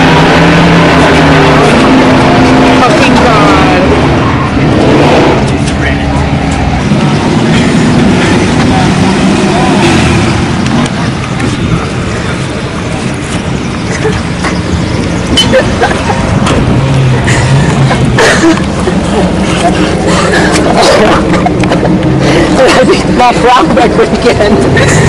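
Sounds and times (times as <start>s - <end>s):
loud race car engine: 0.0s - 25.0s
people's voices: 0.8s - 25.0s.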